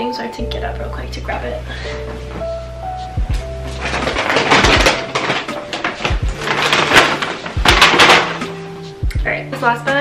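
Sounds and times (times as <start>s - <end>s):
dull thumps: 3.2s - 8.6s
paper bag rustling: 3.3s - 9.0s.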